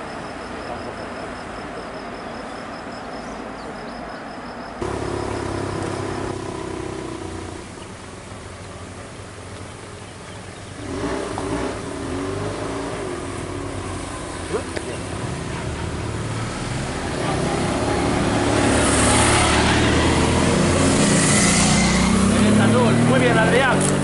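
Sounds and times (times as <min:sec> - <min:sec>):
insect chirping: 0:00.0 - 0:08.5
road noise: 0:00.0 - 0:24.0
motorcycle engine running: 0:04.8 - 0:12.2.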